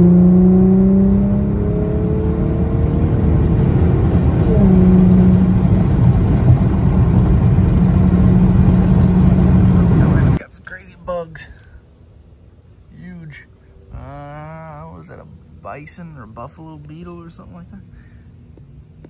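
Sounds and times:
car engine: 0.0s - 19.0s
road rumble: 0.0s - 19.0s.

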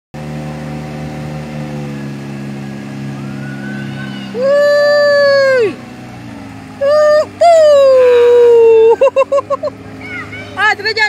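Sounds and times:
boat engine running: 0.1s - 11.0s
water rushing along hull: 0.2s - 11.0s.

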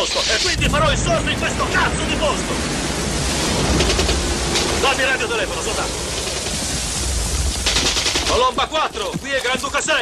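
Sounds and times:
ocean surf: 0.0s - 8.6s
wind: 0.0s - 10.0s.

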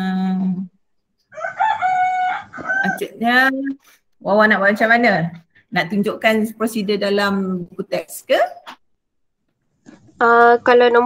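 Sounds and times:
rooster crowing: 1.3s - 3.0s.

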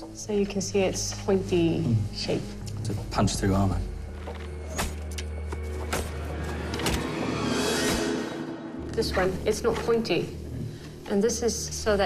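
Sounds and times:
dramatic film score drone: 0.0s - 12.0s.

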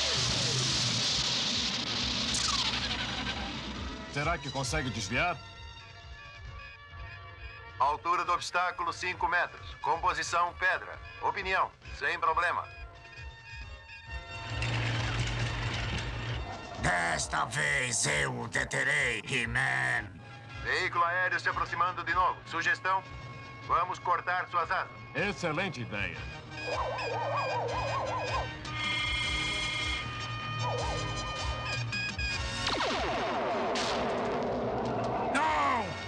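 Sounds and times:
cartoon tracked vehicle rumble: 14.0s - 18.0s
warbling electronic weapon tone: 30.6s - 31.8s.

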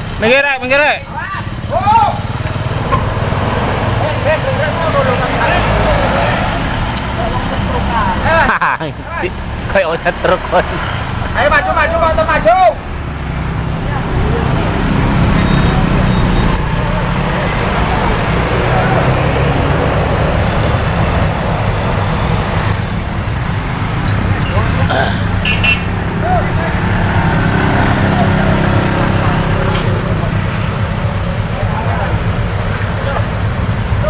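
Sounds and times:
motorcycles passing: 0.0s - 34.0s
people shouting: 1.1s - 2.4s, 26.0s - 28.6s
heavy vehicle engines at low revs: 1.4s - 34.0s.

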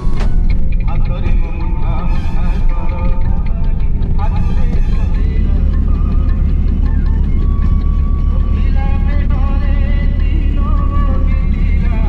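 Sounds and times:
car rumbling while moving: 0.0s - 12.0s
devotional song with accompaniment: 0.0s - 12.0s.

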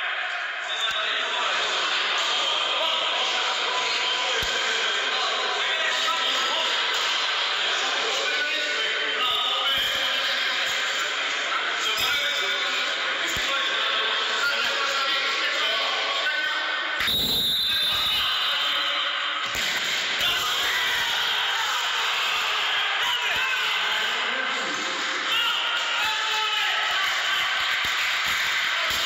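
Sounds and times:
crowd calling and chattering: 0.0s - 29.0s
echoing din of voices: 0.0s - 29.0s.

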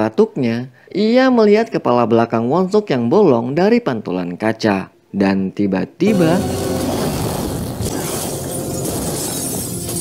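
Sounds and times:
glass display case shattering: 6.5s - 10.0s
glass shards scattering: 7.8s - 10.0s.

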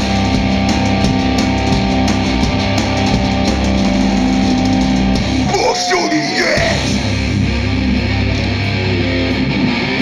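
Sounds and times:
electric guitars and bass: 0.0s - 10.0s
pounding drum kit: 0.0s - 10.0s.

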